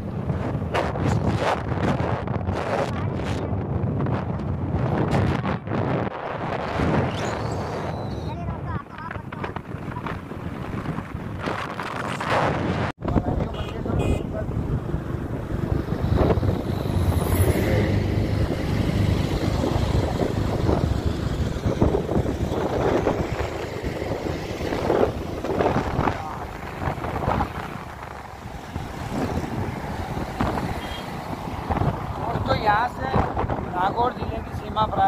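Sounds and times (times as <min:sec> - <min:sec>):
road noise: 0:00.0 - 0:35.0
wind buffeting microphone: 0:00.0 - 0:35.0.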